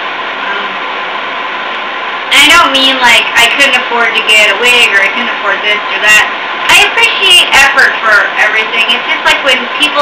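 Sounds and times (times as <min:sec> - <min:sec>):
faint steady whine: 0:00.0 - 0:10.0
person saying um: 0:00.4 - 0:00.8.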